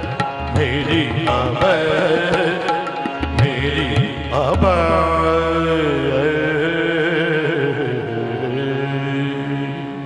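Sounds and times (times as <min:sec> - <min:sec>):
harmoniums holding a chord: 0:00.0 - 0:10.0.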